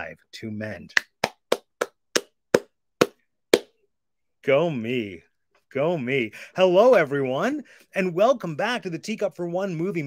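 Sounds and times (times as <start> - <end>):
person clapping hands: 0.9 - 3.7.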